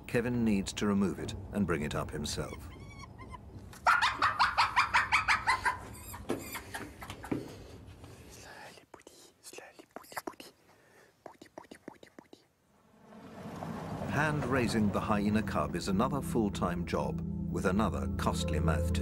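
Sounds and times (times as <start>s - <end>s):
hyena cub squealing: 2.5s - 6.7s.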